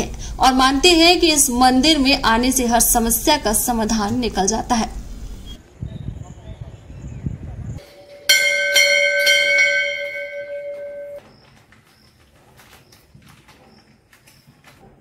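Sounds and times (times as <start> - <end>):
temple bell ringing: 7.8 - 11.2.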